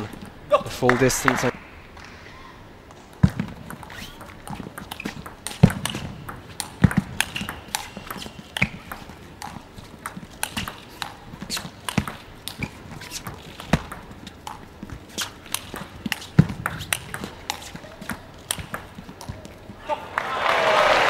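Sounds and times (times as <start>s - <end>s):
table tennis ball clicking: 3.6s - 19.4s.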